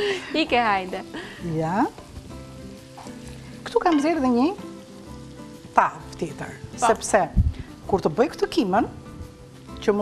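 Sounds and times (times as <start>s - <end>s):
food sizzling in frying pan: 0.0s - 10.0s.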